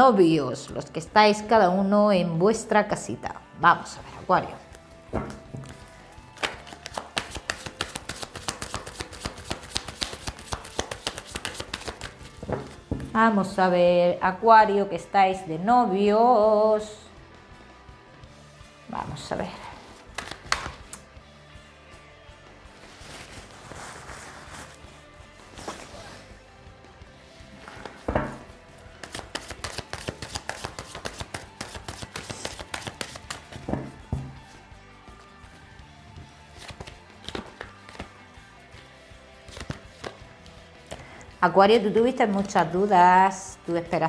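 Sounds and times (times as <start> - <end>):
quiet background music: 0.0 - 44.0
cards being shuffled: 4.2 - 13.1, 20.0 - 21.1, 27.5 - 34.6, 36.2 - 41.1.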